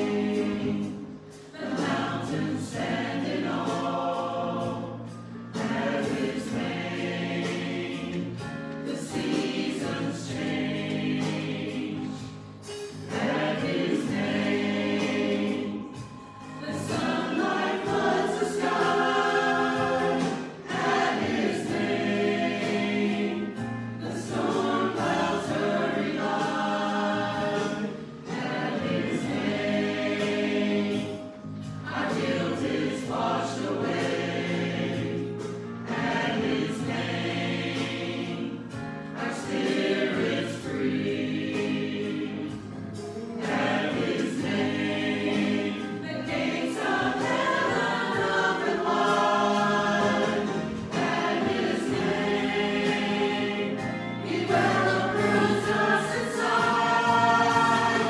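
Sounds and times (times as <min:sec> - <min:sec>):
mixed church choir singing: 0:00.0 - 0:58.0.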